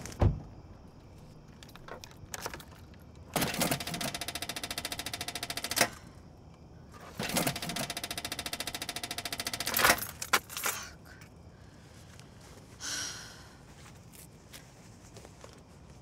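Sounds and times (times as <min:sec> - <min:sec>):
starter solenoid rapid clicking: 0:03.4 - 0:06.0, 0:07.2 - 0:10.0.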